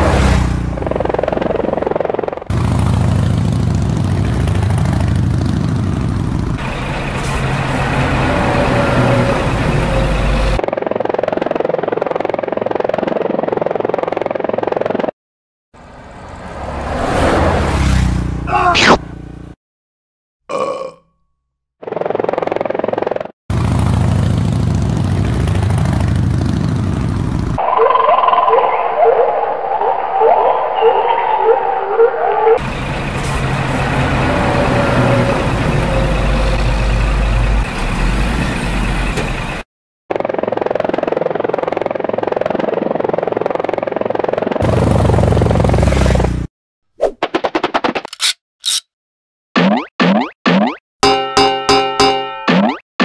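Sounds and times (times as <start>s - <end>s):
vehicle engine rumbling: 0.0s - 10.7s, 23.5s - 27.6s, 32.6s - 39.6s
burp-like gurgles: 20.5s - 21.1s.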